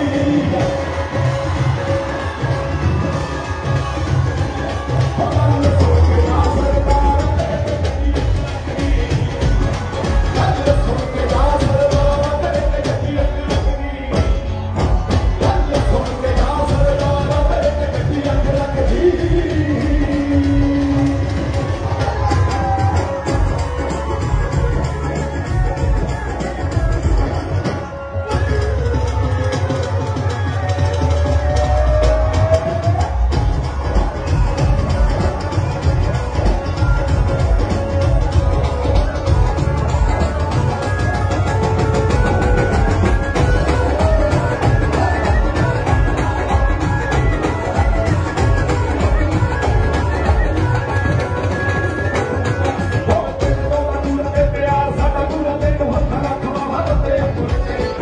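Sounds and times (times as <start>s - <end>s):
amplified pop music with singer: 0.0s - 58.0s
crowd cheering: 0.0s - 58.0s
heavy drum beat: 0.0s - 58.0s.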